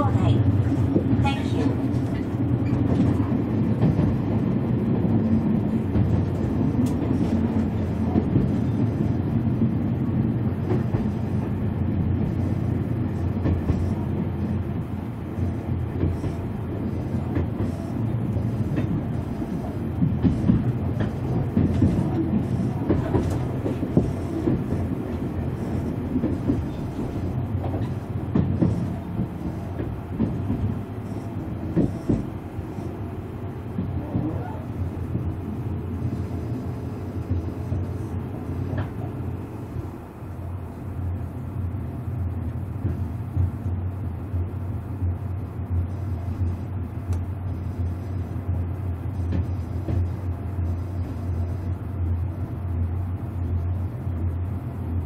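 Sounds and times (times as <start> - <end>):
train wheels rumbling on rail: 0.0 - 55.0.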